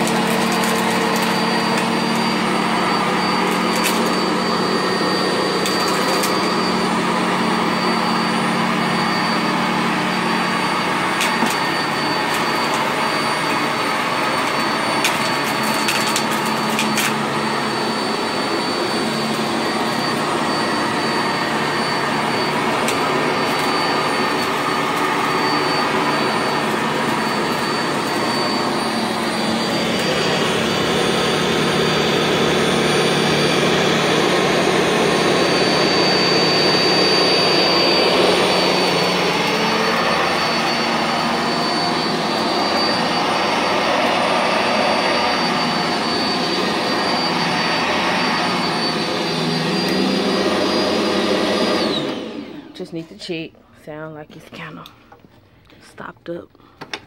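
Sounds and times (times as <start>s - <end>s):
vacuum cleaner running: 0.0s - 56.1s.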